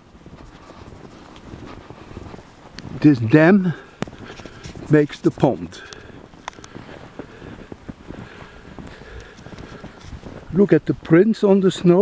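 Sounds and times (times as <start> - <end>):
footsteps in snow: 0.0 - 12.0.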